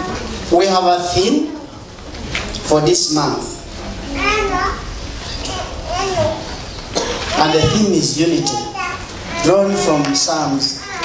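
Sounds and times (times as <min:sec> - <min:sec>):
child calling out: 0:04.1 - 0:06.6, 0:07.2 - 0:11.0.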